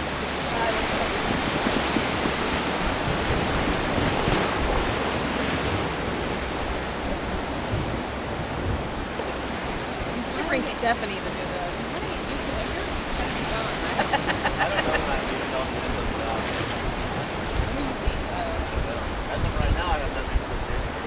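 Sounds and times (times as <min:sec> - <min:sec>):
whitewater rapids rushing: 0:00.0 - 0:21.0.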